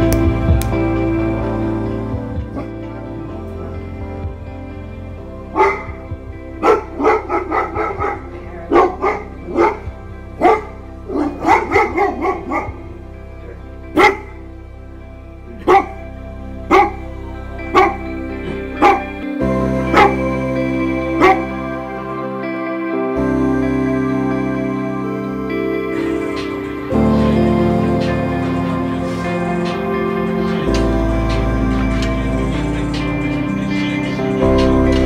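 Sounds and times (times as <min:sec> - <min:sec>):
soft background music: 0:00.0 - 0:35.0
dog barking: 0:05.5 - 0:06.0, 0:06.6 - 0:12.8, 0:14.0 - 0:14.4, 0:15.6 - 0:16.0, 0:16.7 - 0:17.0, 0:17.7 - 0:19.1, 0:19.9 - 0:20.2, 0:21.2 - 0:21.6.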